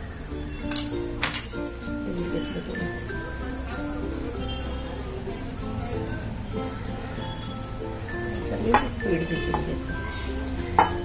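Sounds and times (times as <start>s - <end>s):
light background music: 0.0s - 11.0s
metal spoon clinking bowl: 0.4s - 4.6s, 7.2s - 11.0s.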